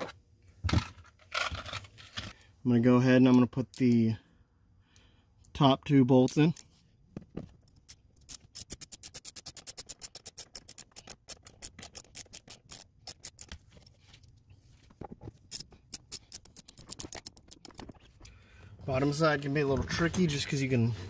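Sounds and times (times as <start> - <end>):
ratchet clicking rapidly: 7.8 - 13.5, 15.5 - 18.0.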